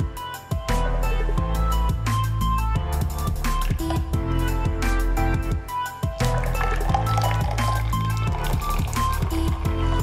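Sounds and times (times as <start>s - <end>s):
music with beat and bass line: 0.0s - 10.0s.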